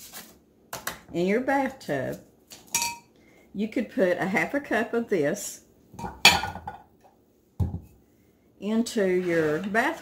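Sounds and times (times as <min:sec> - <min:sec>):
bowls clattering: 0:02.6 - 0:03.1, 0:06.0 - 0:06.9.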